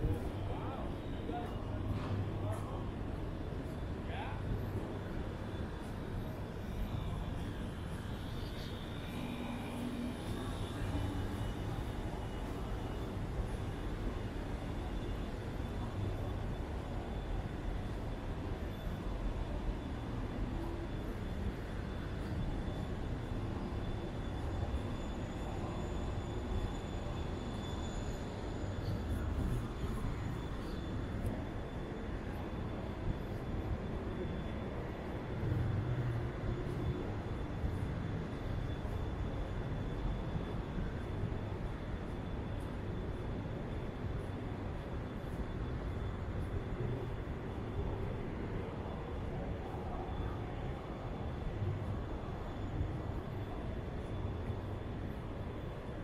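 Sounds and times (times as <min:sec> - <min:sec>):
city ambience rumble: 0:00.0 - 0:56.0
thin high whine: 0:00.0 - 0:56.0.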